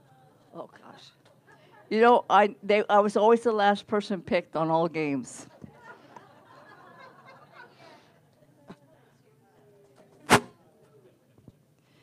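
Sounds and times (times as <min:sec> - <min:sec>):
sharp knock: 0:10.3 - 0:10.5.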